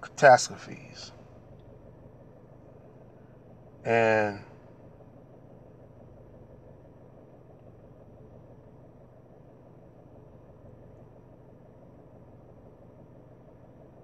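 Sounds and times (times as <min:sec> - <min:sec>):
low hum inside car cabin: 0:00.0 - 0:14.0.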